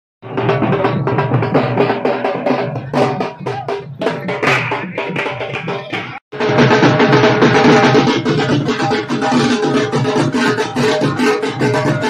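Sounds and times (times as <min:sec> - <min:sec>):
barrel drum beaten in fast rhythm: 0:00.2 - 0:12.0.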